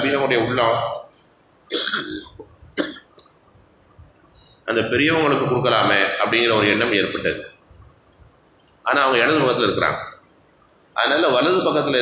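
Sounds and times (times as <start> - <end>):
man coughing: 1.7 - 3.2.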